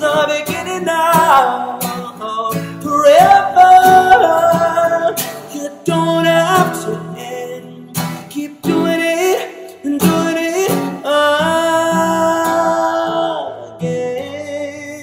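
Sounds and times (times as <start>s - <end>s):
acoustic guitar strummed and plucked: 0.0s - 15.0s
man singing: 0.0s - 15.0s.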